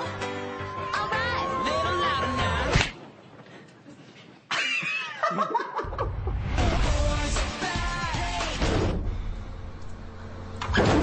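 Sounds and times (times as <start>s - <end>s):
singing over music: 0.0s - 2.8s, 6.6s - 8.6s
people laughing: 4.5s - 6.4s.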